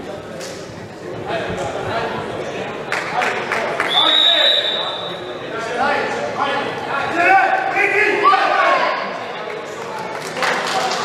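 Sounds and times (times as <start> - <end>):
referee's whistle blast: 3.9 - 5.2.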